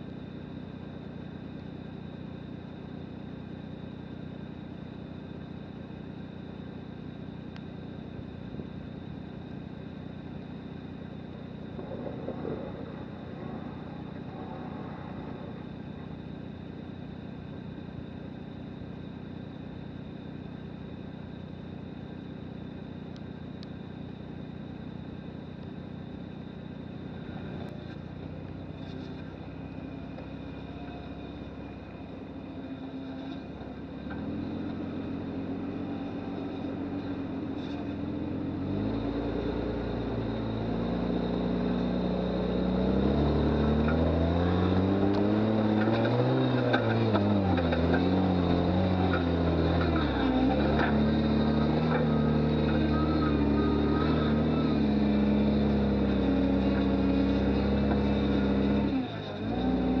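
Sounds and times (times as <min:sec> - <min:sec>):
car engine pulling uphill: 0:00.0 - 1:00.0.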